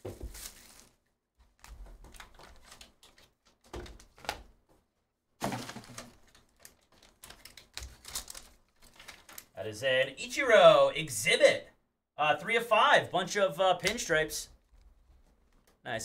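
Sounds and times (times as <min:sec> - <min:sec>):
foil wrapper crinkling: 0:05.4 - 0:09.6.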